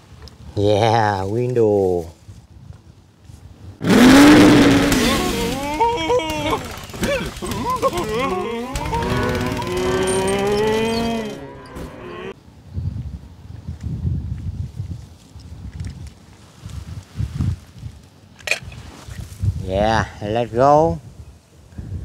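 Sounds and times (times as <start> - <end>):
cartoon sound effects: 3.8 - 12.4
sliding pitched calls and tones: 3.8 - 12.4
cartoon music: 8.0 - 12.4.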